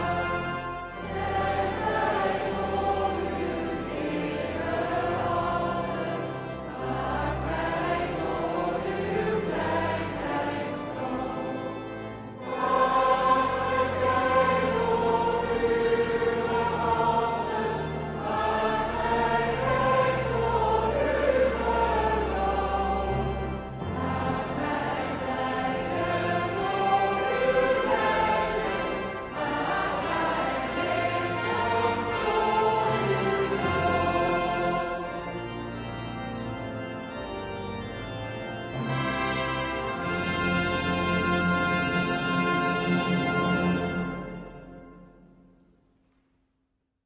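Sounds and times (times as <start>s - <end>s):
choir and congregation singing hymn: 0.0s - 45.2s
orchestral accompaniment: 0.0s - 45.5s.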